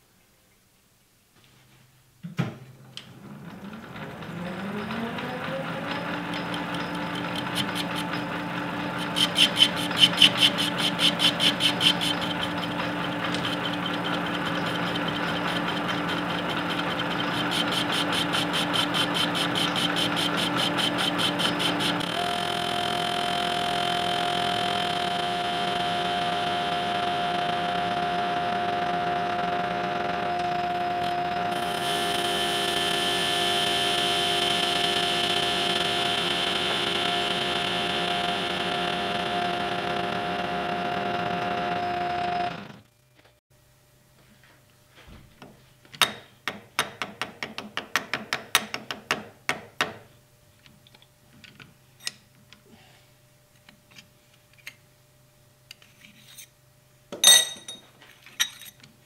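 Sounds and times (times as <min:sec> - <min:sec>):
metal lathe whining: 0:03.2 - 0:42.8.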